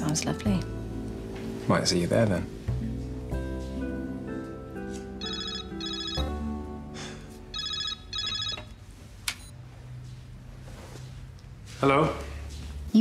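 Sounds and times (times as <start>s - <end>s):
soft background music: 0.0s - 13.0s
mobile phone ringing: 5.2s - 6.5s, 7.5s - 8.8s.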